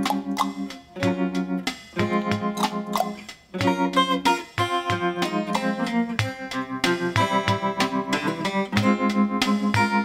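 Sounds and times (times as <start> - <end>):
guitar picking chords: 0.0 - 10.0.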